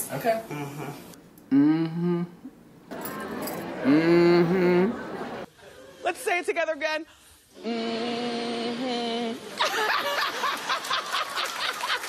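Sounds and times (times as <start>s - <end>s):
crowd saying mm-hmm: 0.5s - 2.5s, 3.7s - 5.5s, 7.6s - 9.5s
audience and host laughing: 9.6s - 12.0s.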